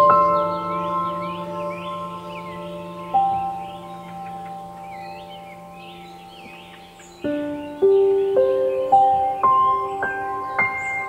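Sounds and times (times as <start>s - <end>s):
birds chirping: 0.0s - 11.0s
calm ambient music with bell notes: 0.0s - 11.0s.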